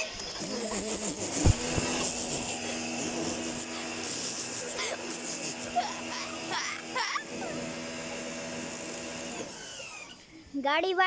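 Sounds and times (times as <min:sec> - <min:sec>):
pressure washer humming: 0:00.0 - 0:10.3.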